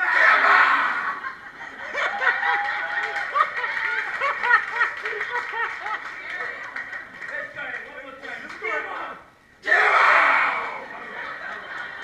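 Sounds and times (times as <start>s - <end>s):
group shouting or cheering: 0.0s - 1.2s, 9.6s - 10.9s.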